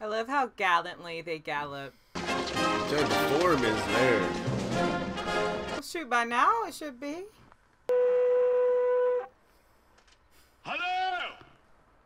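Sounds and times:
trumpet held note: 7.9 - 9.3.

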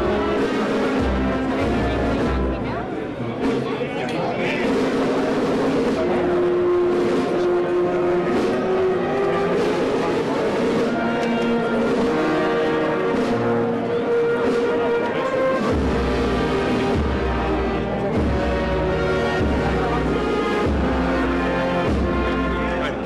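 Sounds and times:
wind band playing slow march: 0.0 - 3.8, 4.4 - 23.0.

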